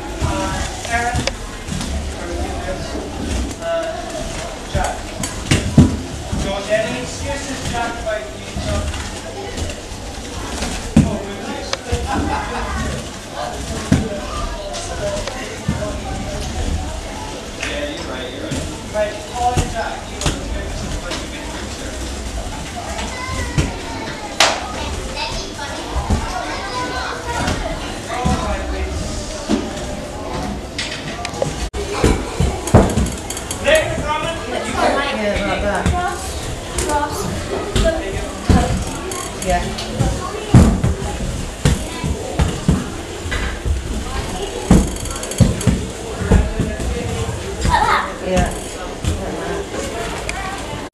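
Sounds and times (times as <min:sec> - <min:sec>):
faint voices: 0:00.0 - 0:50.9.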